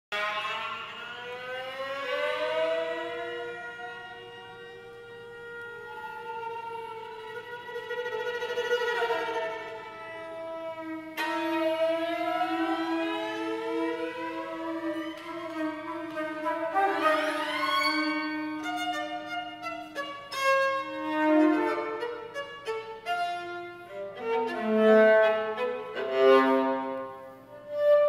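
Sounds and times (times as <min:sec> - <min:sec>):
flute and violas improvising: 0:00.2 - 0:28.0.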